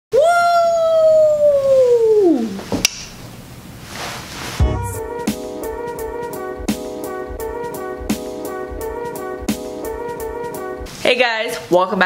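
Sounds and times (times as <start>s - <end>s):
woman howling long oooo: 0.1s - 2.6s.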